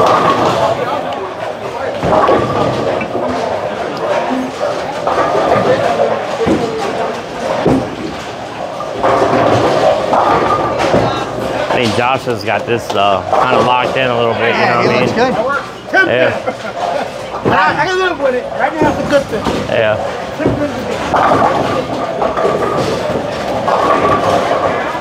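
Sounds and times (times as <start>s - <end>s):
bowling balls and pins knocking: 0.0s - 15.7s, 16.4s - 25.0s
background chatter: 0.0s - 25.0s.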